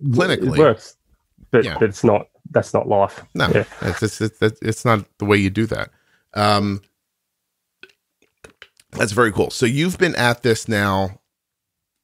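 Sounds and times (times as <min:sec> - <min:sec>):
person speaking: 0:00.0 - 0:06.8, 0:08.4 - 0:11.2.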